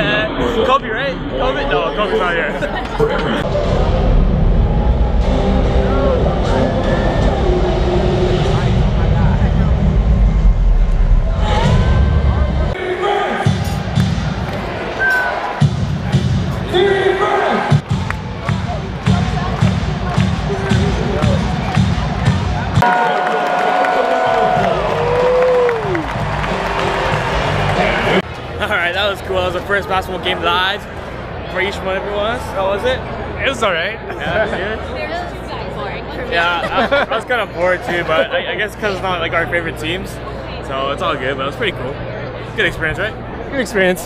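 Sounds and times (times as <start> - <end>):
crowd noise: 0.0 - 44.0
deep rumbling bass: 3.0 - 12.8.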